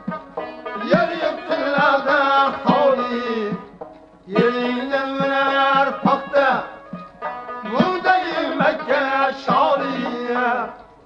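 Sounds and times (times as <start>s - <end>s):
hand drum: 0.0s - 8.9s
plucked lute: 0.0s - 11.0s
man singing long held notes: 0.8s - 3.7s, 4.3s - 6.8s, 7.7s - 10.8s.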